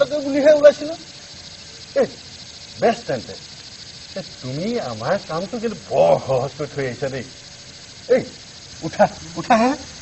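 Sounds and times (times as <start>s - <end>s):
man speaking: 0.0s - 1.2s, 1.9s - 3.5s, 4.1s - 7.4s, 8.0s - 10.0s
night insects chirping: 0.0s - 10.0s.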